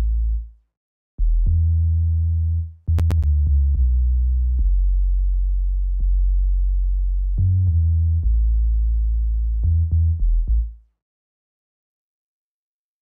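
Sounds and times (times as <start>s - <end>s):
deep synth bass notes: 1.2s - 10.7s.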